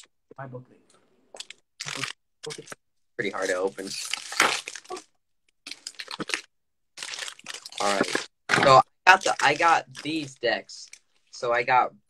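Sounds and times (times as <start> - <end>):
foil pack tearing and crinkling: 3.6 - 5.0.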